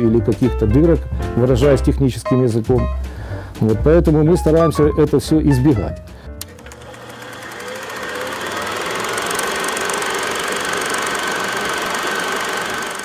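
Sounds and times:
film projector clattering: 6.4 - 13.0.

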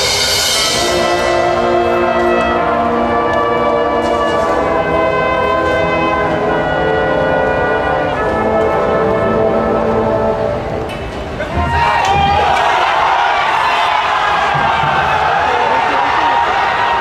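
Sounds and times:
brass section playing chords: 0.0 - 11.4.

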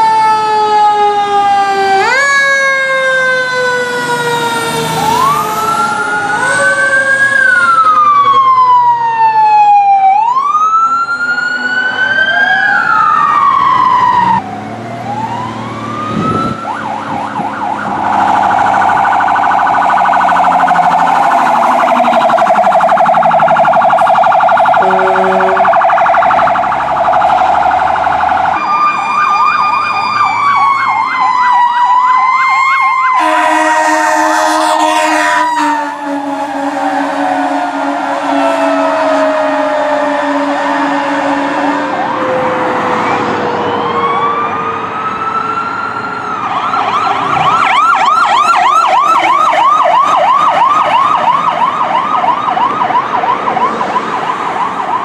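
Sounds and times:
fire truck siren wailing: 0.0 - 55.0
warbling yelp siren: 0.0 - 55.0
horn blast: 20.9 - 25.9, 33.2 - 42.1.

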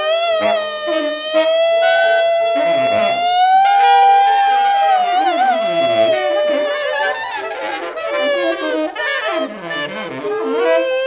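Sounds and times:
tenor saxophone long note: 0.0 - 11.0.

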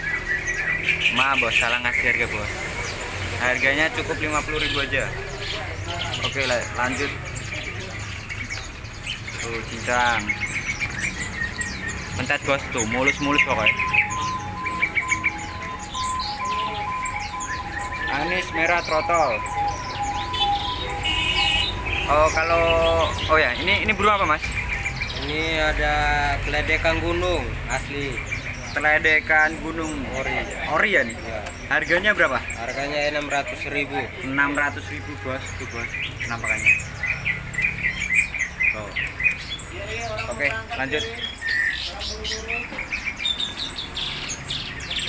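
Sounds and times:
songbirds chirping: 0.0 - 45.0
alternating two-pitch tones: 12.9 - 23.3.

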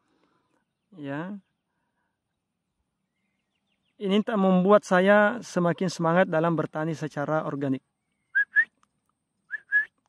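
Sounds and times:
short rising whistled notes: 8.3 - 8.8, 9.5 - 10.0.

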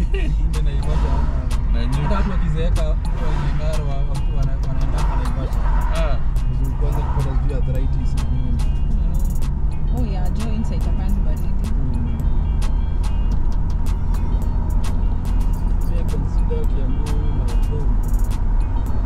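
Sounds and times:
road and engine rumble in car: 0.0 - 19.0.

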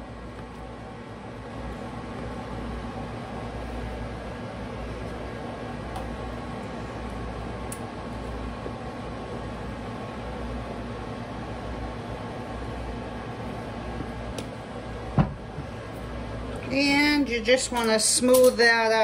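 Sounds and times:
fan humming: 0.0 - 19.0.

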